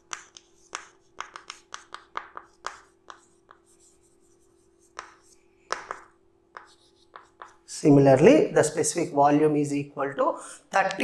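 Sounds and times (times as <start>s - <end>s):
chalk scratching on chalkboard: 0.0s - 7.9s.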